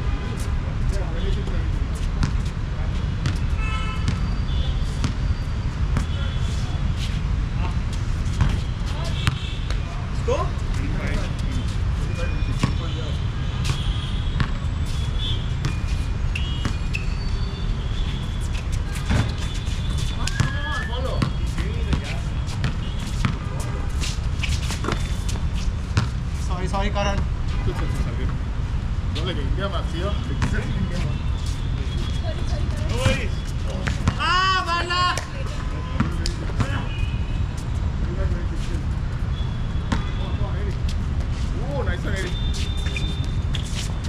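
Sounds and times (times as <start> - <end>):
shoe squeaks: 1.2 - 28.2, 30.0 - 35.1, 39.3 - 44.0
basketball bouncing: 3.2 - 4.3, 8.3 - 9.8, 13.6 - 14.6, 15.6 - 16.9, 18.4 - 23.6, 26.0 - 26.2, 32.8 - 34.3, 39.8 - 40.2
distant players calling: 30.1 - 37.4.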